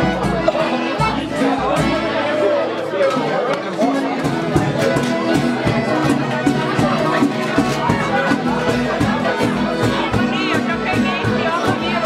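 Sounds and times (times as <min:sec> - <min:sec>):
accordion sustained notes: 0:00.0 - 0:12.0
people chattering: 0:00.0 - 0:12.0.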